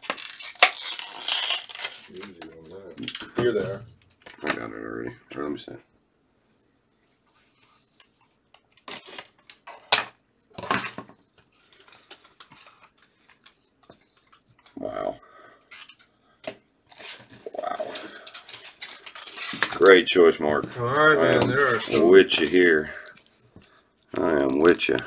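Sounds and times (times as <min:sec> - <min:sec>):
plastic rustling: 0:00.0 - 0:03.2, 0:10.7 - 0:14.8, 0:16.9 - 0:25.0.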